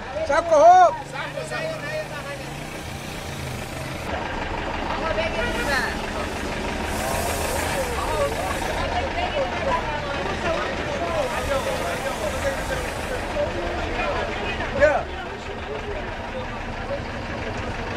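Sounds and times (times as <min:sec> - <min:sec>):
bus engine idling: 0:00.0 - 0:17.9
many people talking: 0:00.0 - 0:17.9.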